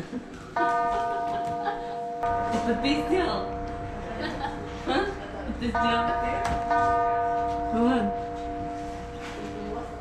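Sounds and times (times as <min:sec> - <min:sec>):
steady background tone: 0:00.5 - 0:10.0
ringing bell-like notes: 0:00.6 - 0:10.0.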